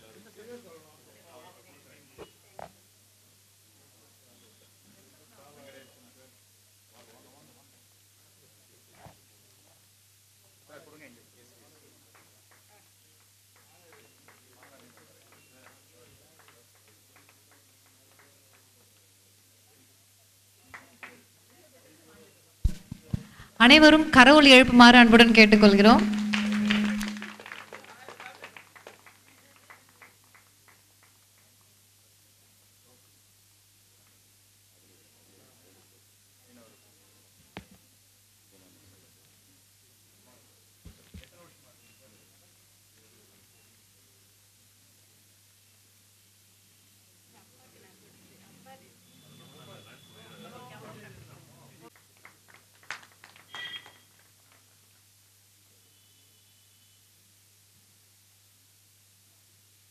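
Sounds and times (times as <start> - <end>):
scattered hand claps: 12.1 - 19.0, 26.0 - 31.6, 51.9 - 54.8
person speaking: 22.7 - 27.4
high beep: 24.0 - 27.4, 53.6 - 54.0.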